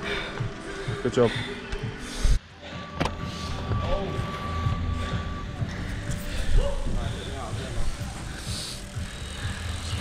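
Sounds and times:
bicycle rolling on concrete: 0.0s - 2.2s, 3.9s - 10.0s.

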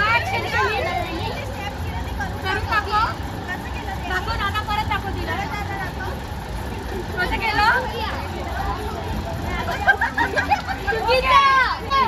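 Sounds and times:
children and adults chattering: 0.0s - 12.0s
low steady rumble: 0.0s - 12.0s.

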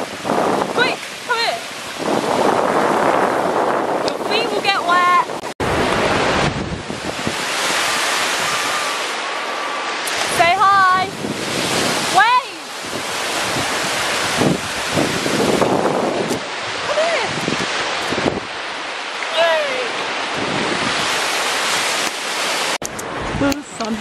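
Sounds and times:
surf washing onto beach: 0.0s - 24.0s
wind buffeting microphone: 0.0s - 24.0s.

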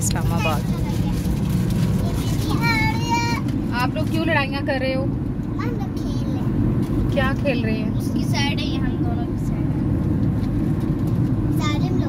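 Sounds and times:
road and engine noise in car: 0.0s - 12.0s.

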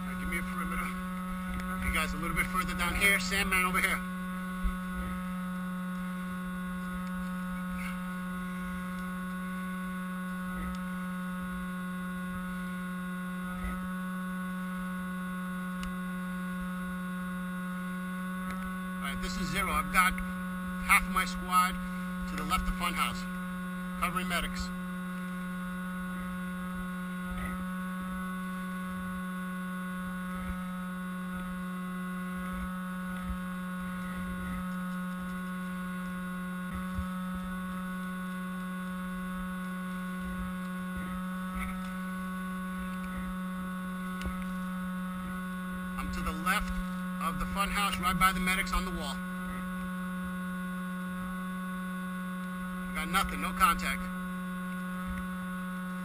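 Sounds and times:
person speaking: 0.0s - 4.1s, 19.0s - 20.2s, 20.8s - 23.3s, 24.0s - 24.8s, 46.0s - 49.2s, 52.9s - 54.1s
electrical hum: 0.0s - 56.0s.

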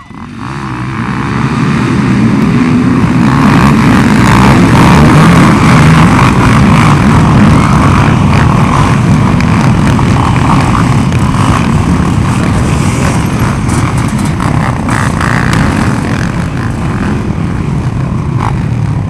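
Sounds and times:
quad engines revving: 0.1s - 19.0s.

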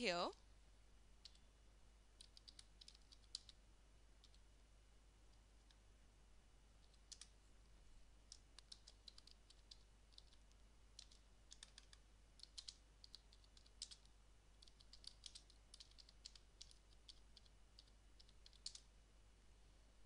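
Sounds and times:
low steady hum: 0.0s - 20.0s
computer keyboard typing: 1.2s - 1.4s, 2.2s - 3.6s, 6.8s - 7.3s, 8.3s - 18.9s.

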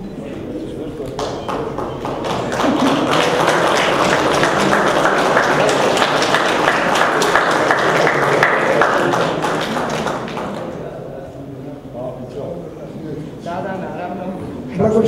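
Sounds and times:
audience applause: 0.8s - 10.9s.

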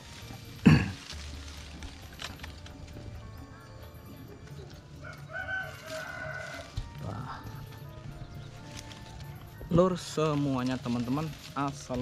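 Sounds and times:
background music: 0.0s - 12.0s
rooster crowing: 5.0s - 7.0s.

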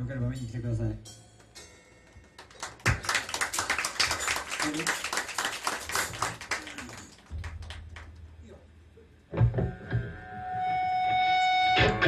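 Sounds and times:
audience clapping: 2.1s - 8.3s.

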